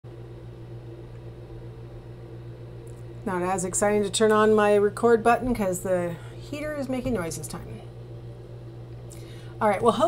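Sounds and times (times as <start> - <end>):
heater humming: 0.1 - 10.0.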